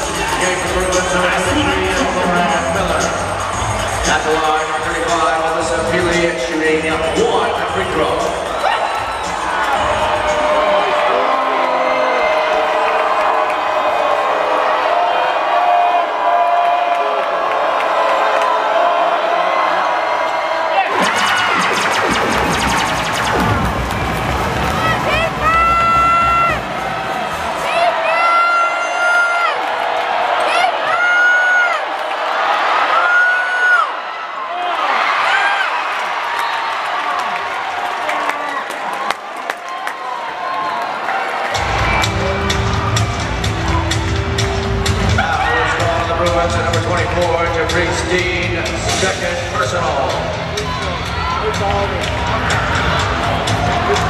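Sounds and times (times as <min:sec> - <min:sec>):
music: 0:00.0 - 0:11.8, 0:20.9 - 0:27.9, 0:41.6 - 0:54.0
crowd cheering and shouting: 0:00.0 - 0:54.0.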